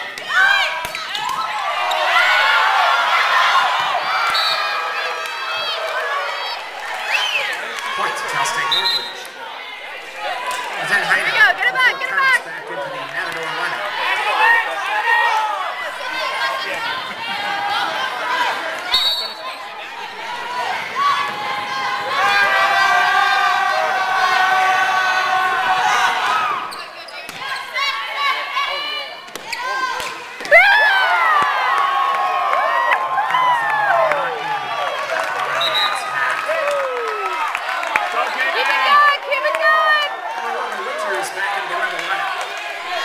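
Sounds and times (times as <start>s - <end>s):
players and spectators shouting: 0.0s - 43.0s.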